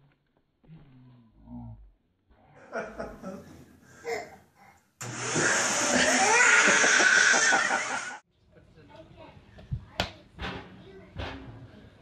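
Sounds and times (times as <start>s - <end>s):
vacuum cleaner running: 5.0s - 8.2s.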